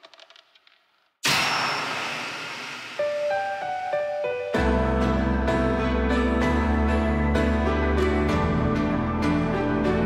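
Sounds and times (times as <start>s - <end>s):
sharp ringing strike: 1.2s - 3.9s.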